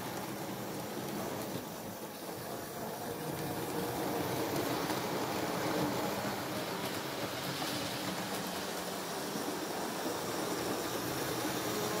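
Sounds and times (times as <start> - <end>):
model train rumbling on track: 0.0 - 12.0.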